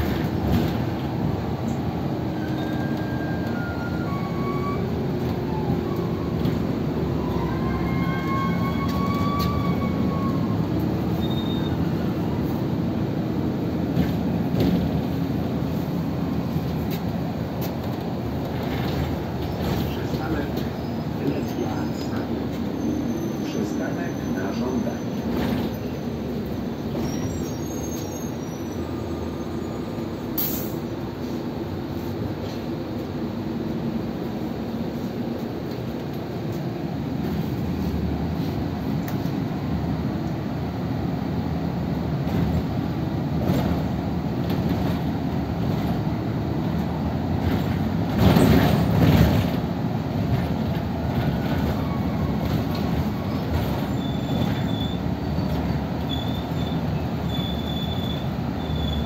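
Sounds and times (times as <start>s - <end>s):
bus engine and road rumble: 0.0s - 59.0s.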